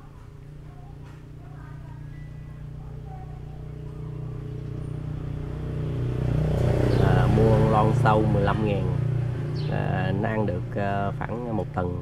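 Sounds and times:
motor engine running: 0.0s - 12.0s.

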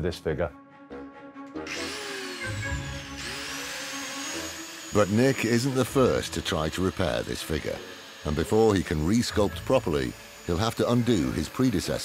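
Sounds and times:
angle grinder grinding cement: 1.6s - 12.0s.

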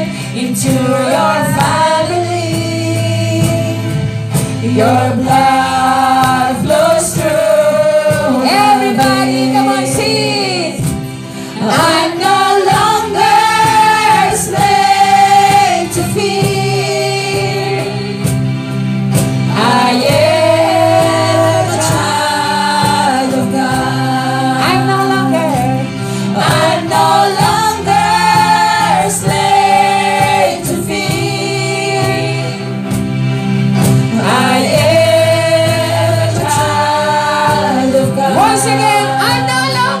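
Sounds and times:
women singing gospel song: 0.0s - 18.6s, 19.4s - 33.2s, 33.8s - 40.0s
cajon drum: 0.0s - 33.2s.

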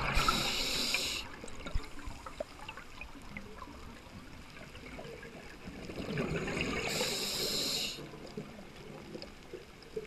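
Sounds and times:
underwater bubbles rushing: 0.0s - 10.0s.

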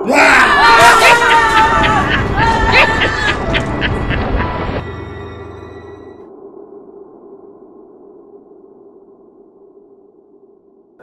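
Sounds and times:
people screaming in fright: 0.0s - 3.6s.

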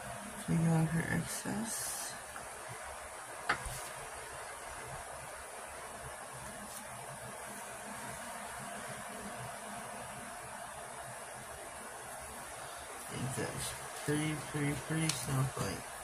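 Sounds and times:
steady background hiss: 0.0s - 16.0s.

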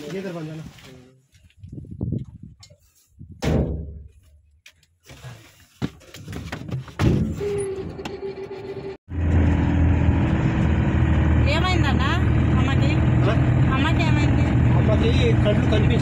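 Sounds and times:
van engine and road drone: 7.2s - 16.0s
people talking: 11.4s - 16.0s.

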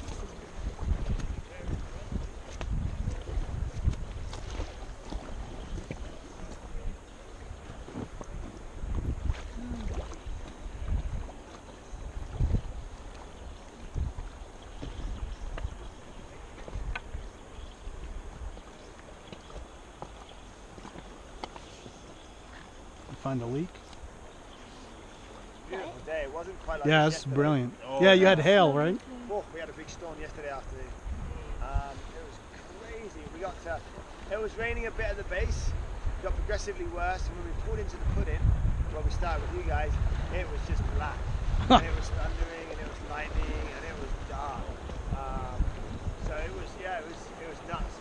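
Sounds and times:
wind buffeting microphone: 0.0s - 27.4s, 29.3s - 48.0s
faint moving water: 0.0s - 48.0s.

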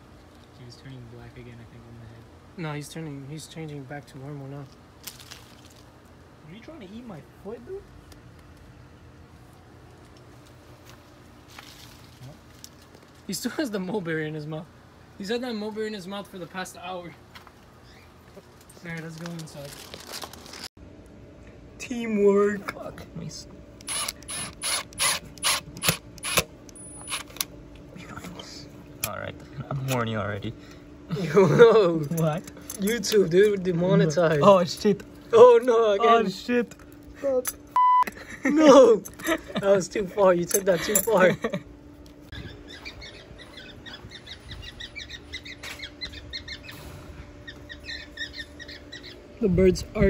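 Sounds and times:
screwdriver ratcheting: 23.8s - 26.5s
cockatiels chirping: 47.4s - 49.2s.

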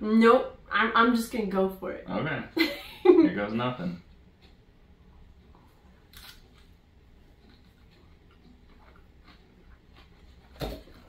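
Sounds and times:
faint chewing clicks: 4.3s - 10.6s.

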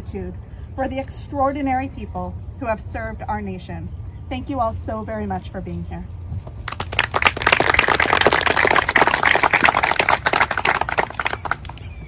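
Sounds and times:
audience applause: 6.7s - 11.8s.

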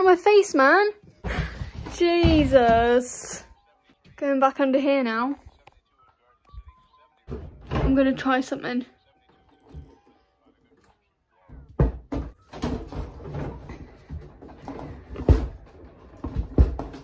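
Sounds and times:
knocks and thumps: 1.1s - 3.4s, 7.3s - 8.3s, 11.5s - 17.0s.

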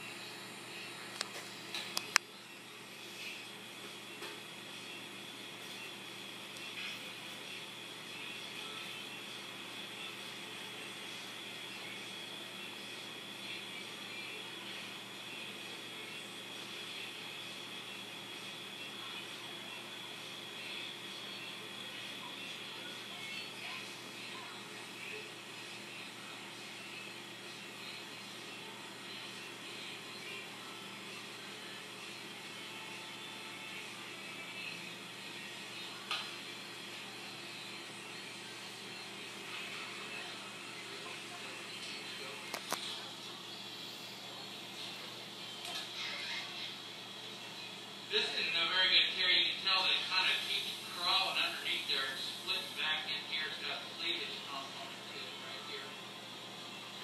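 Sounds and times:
steady hum and hiss: 0.0s - 57.0s.

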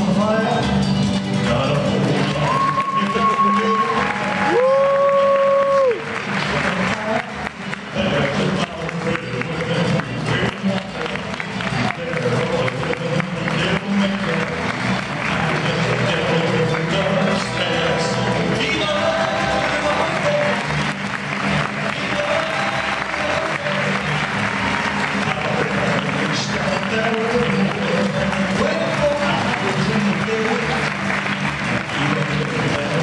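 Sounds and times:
loud music: 0.0s - 33.0s
audience applauding and cheering: 1.3s - 33.0s.

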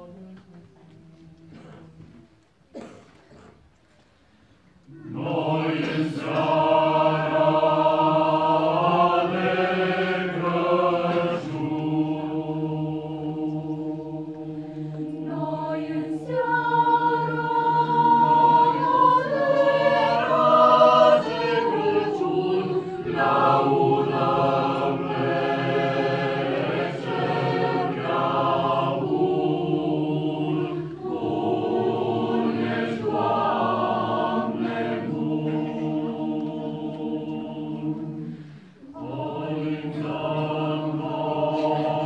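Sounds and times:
mixed choir singing a cappella: 4.8s - 42.0s.

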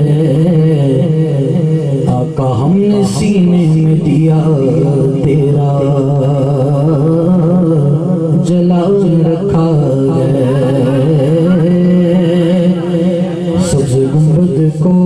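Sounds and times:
person singing devotional song: 0.0s - 15.0s.

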